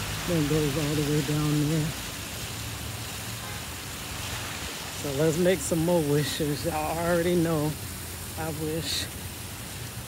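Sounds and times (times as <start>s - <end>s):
water rushing down fountain: 0.0s - 10.0s.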